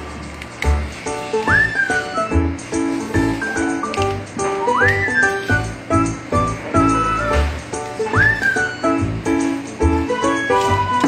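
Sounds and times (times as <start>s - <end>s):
whistled melody: 1.1s - 11.0s.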